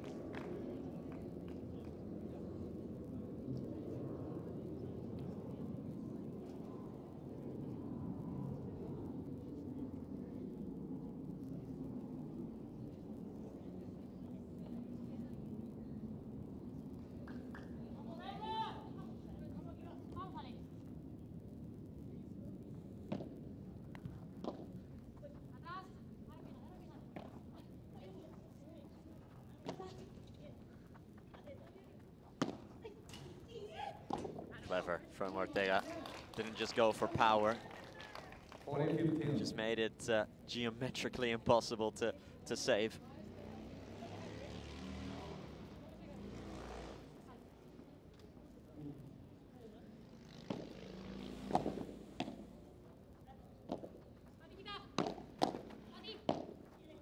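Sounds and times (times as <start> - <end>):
crowd murmur: 0.0 - 41.1, 41.8 - 57.0
faint voices: 0.0 - 55.0
ball struck by rackets: 32.4 - 33.3, 50.5 - 50.8, 51.4 - 52.6, 53.7 - 53.9, 55.0 - 56.6.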